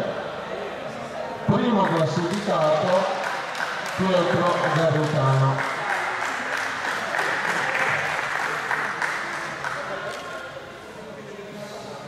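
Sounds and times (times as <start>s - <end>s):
audience applauding: 1.7s - 10.2s.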